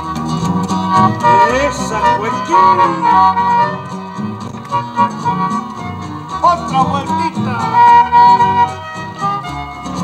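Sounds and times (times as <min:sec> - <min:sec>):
accordion: 0:00.0 - 0:10.0
charango: 0:00.0 - 0:10.0
folk music from cassette: 0:00.0 - 0:10.0
saxophone: 0:00.7 - 0:06.3, 0:07.6 - 0:10.0.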